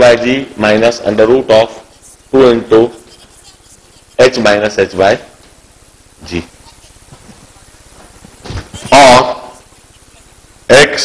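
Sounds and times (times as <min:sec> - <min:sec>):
man speaking: 0:00.0 - 0:03.0, 0:04.2 - 0:05.4, 0:06.2 - 0:06.6, 0:08.9 - 0:09.6, 0:10.7 - 0:11.0
low room hum: 0:00.0 - 0:11.0.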